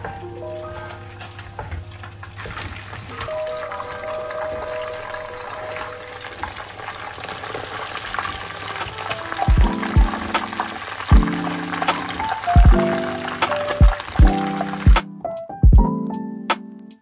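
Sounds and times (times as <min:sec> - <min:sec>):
fish sizzling in hot oil: 0:01.1 - 0:14.9
background music with bass beats: 0:09.5 - 0:10.5, 0:11.1 - 0:12.0, 0:12.6 - 0:16.6.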